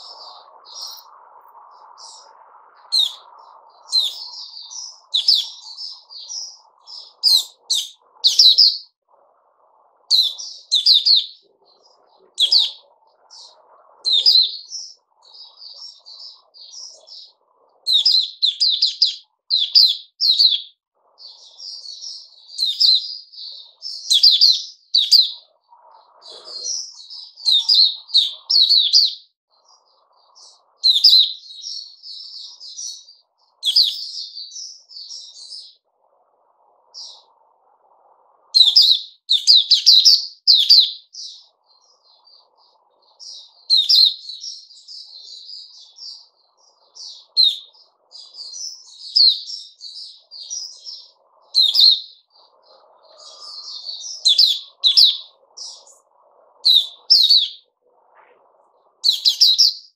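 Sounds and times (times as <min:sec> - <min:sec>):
bird chirping rapidly: 0:00.0 - 0:01.1, 0:01.7 - 0:09.0, 0:10.1 - 0:25.5, 0:26.2 - 0:29.3, 0:30.3 - 0:35.8, 0:38.6 - 0:56.0, 0:56.6 - 0:57.7, 0:59.0 - 0:59.9.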